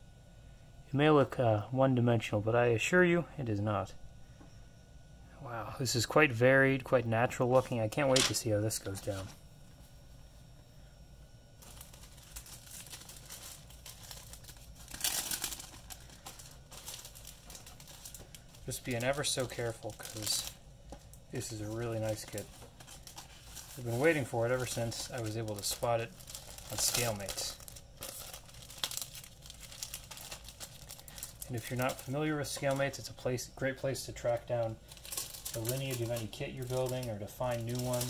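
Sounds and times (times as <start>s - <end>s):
plastic packaging crinkling: 7.4s - 9.4s, 11.6s - 38.0s.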